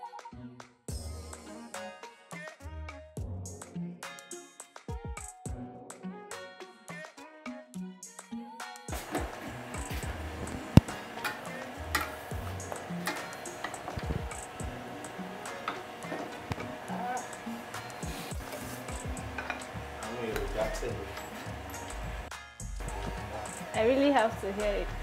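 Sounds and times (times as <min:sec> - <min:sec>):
music: 0:00.0 - 0:25.0
spoon clinking and scraping pot: 0:11.2 - 0:14.0, 0:18.5 - 0:19.8.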